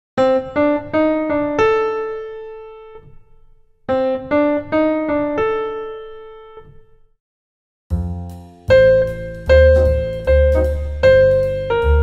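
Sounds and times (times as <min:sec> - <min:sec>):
piano melody single notes: 0:00.2 - 0:07.1, 0:07.9 - 0:12.0.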